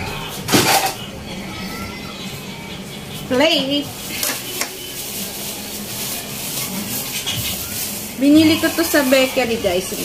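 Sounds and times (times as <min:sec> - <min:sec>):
plastic bag crackling: 0:03.7 - 0:10.0.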